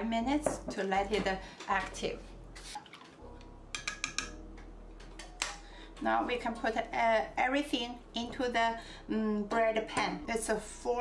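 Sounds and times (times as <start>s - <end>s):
kitchenware clinking and knocking: 3.8s - 5.6s.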